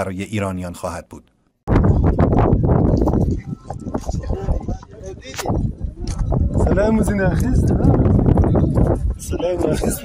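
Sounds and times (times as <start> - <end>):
wind rumble on microphone: 1.7 - 10.0
men's voices: 3.3 - 10.0.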